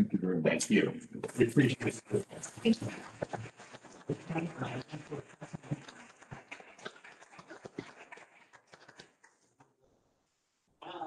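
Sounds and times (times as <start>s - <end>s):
cloth and paper rustling: 1.2s - 9.2s.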